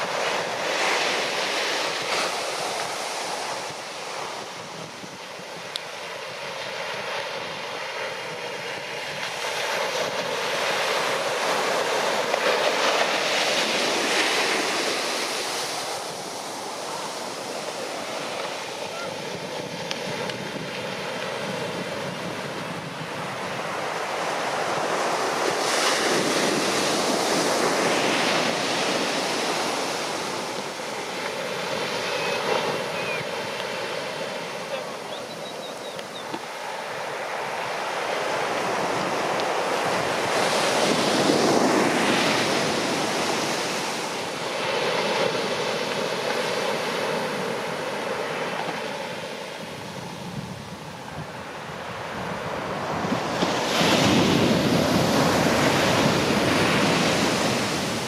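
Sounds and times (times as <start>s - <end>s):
waves crashing on sand: 0.0s - 58.0s.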